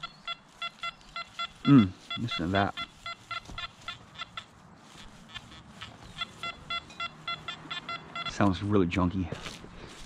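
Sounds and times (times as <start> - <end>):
metal detector short beeps: 0.0 - 4.5, 5.3 - 8.6.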